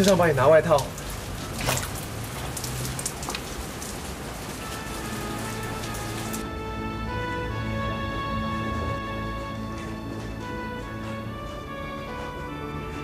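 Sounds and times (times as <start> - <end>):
heavy rain on wet pavement: 0.0 - 10.5
sharp splashes: 0.8 - 6.4
soft music: 4.6 - 13.0.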